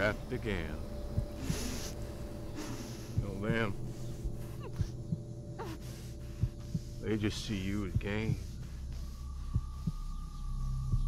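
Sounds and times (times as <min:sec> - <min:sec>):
heartbeat thuds: 0:00.0 - 0:11.0
low drone: 0:00.0 - 0:11.0.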